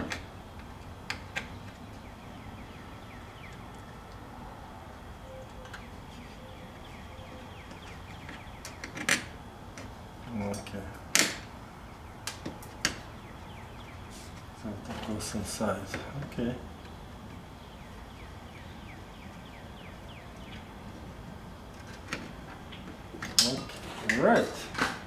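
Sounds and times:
low steady background noise: 0.0 - 25.0.

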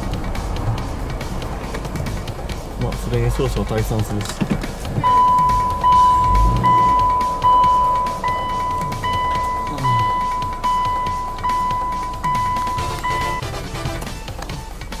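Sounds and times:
music: 0.0 - 15.0
electronic beep pulses: 5.0 - 13.4.

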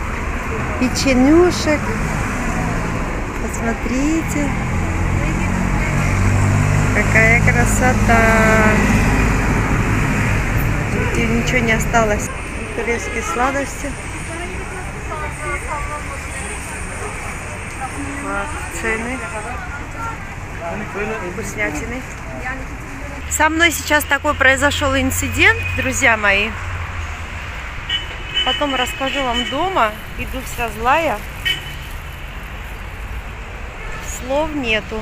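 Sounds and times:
background chatter: 0.0 - 9.5, 10.5 - 26.1
traffic rumble: 0.0 - 35.0.

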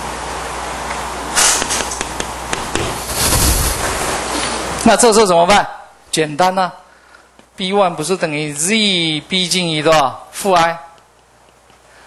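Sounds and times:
microphone hiss: 0.0 - 12.0
rumbling rustle: 2.7 - 4.8.

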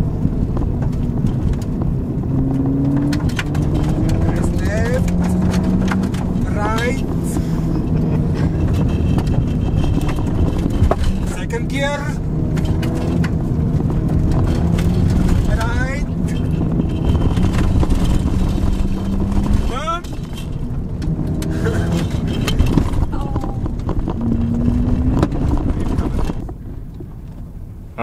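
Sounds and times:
car engine running: 0.0 - 28.0
tyres rumbling on gravel: 0.0 - 28.0.

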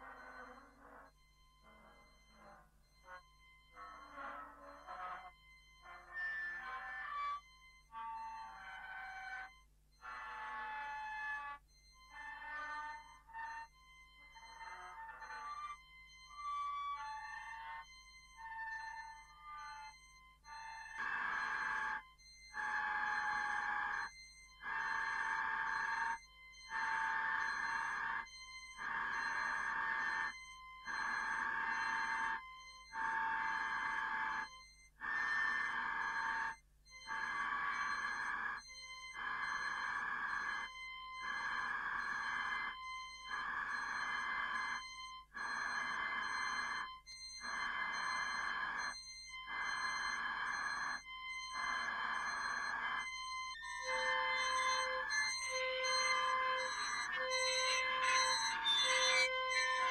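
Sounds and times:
faint high electronic tones: 52.3 - 59.9
pulsing buzzing electronic tone: 53.8 - 59.9.

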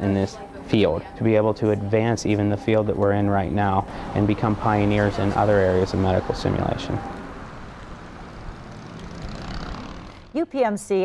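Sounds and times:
street noise rumble: 0.0 - 11.0.

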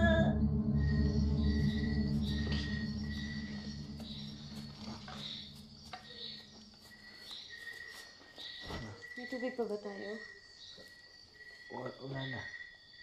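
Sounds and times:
voice: 0.0 - 0.4
low drone of film music: 0.0 - 7.2
night insects chirping: 0.0 - 13.0.

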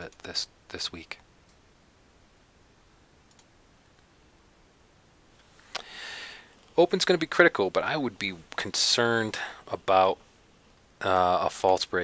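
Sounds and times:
soft breath hiss: 0.0 - 12.0
computer mouse clicks: 3.3 - 4.1.

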